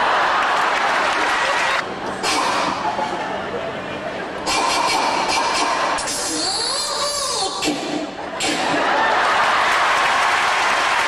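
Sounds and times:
audience applauding: 0.0 - 1.8, 8.9 - 11.0.

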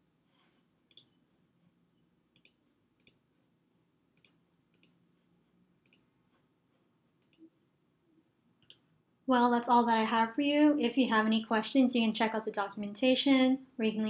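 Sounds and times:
computer mouse clicks: 0.9 - 1.2, 2.3 - 3.2, 4.2 - 5.0, 5.8 - 6.1, 7.2 - 7.5, 8.6 - 8.9.

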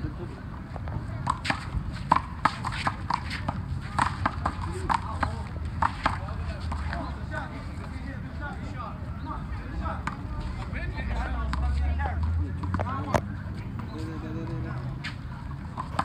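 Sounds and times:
low city rumble: 0.0 - 16.0.

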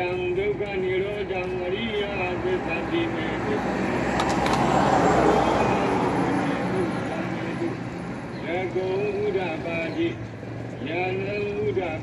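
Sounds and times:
road vehicle passing: 0.0 - 12.0.

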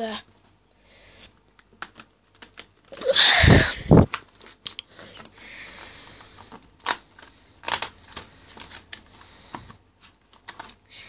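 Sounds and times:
cardboard snapping: 6.5 - 10.8.

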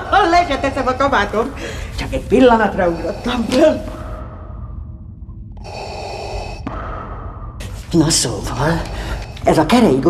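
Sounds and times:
low steady hum: 0.0 - 10.0
mechanical respirator breathing: 5.6 - 9.7.

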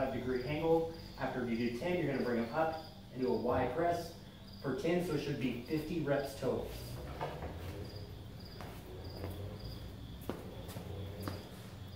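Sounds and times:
cricket chirping: 0.0 - 11.9
footsteps and knocks: 6.7 - 11.9.

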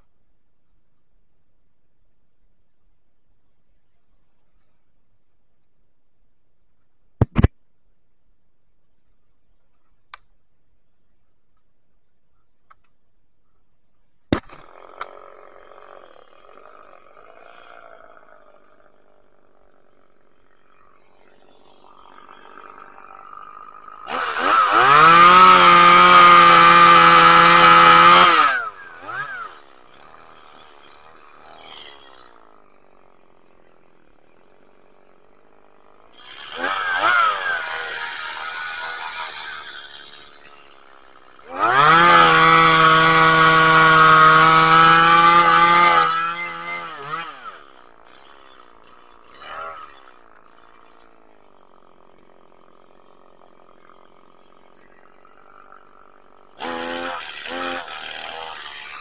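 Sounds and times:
chainsaw revving and idling: 14.3 - 59.0.

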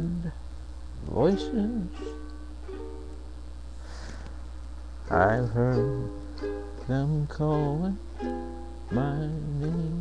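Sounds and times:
ukulele chords ringing: 1.2 - 3.5, 5.1 - 10.0.

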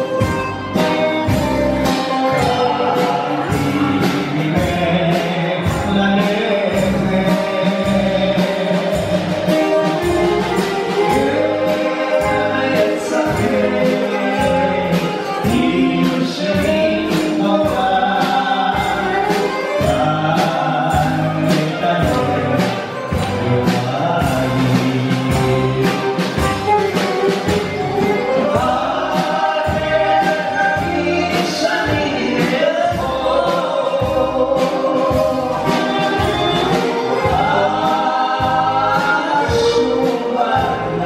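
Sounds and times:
drum and cymbal hits: 0.0 - 41.0
live pop band: 0.0 - 41.0
person singing: 0.0 - 41.0.

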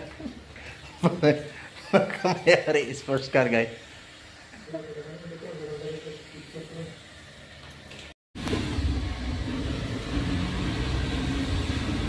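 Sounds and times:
vehicle engine and road rumble: 8.4 - 12.0.

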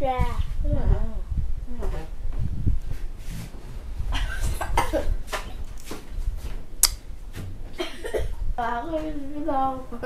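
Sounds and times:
person coughing: 7.8 - 8.4.

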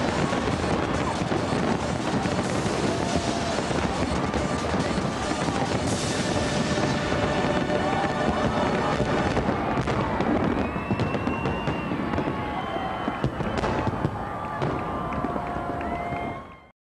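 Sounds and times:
sharp firework bangs: 0.0 - 15.4
firework shells crackling and popping: 0.0 - 16.4
soundtrack music: 5.8 - 9.2.

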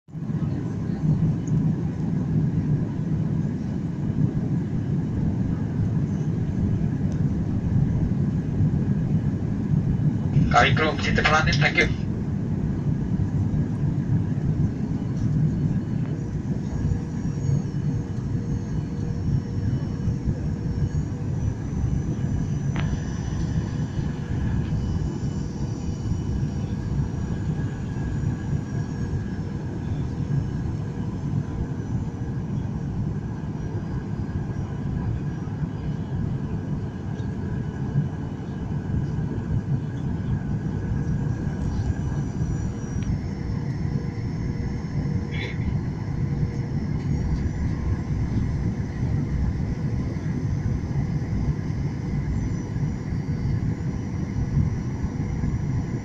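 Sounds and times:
faint steady whining tones: 0.1 - 56.0
jet engine rumble in cabin: 0.1 - 56.0.

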